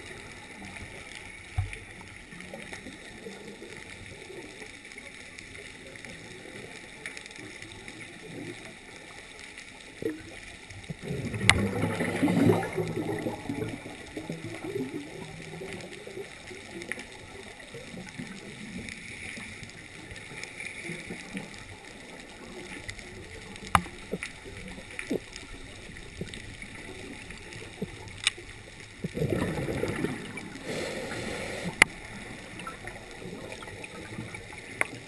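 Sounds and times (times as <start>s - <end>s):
muffled underwater noise: 0.0s - 35.0s
rumbling bubbling underwater: 0.0s - 35.0s.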